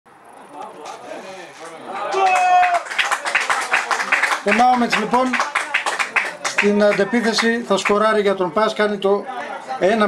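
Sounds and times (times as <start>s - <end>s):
man shouting: 2.0s - 2.9s.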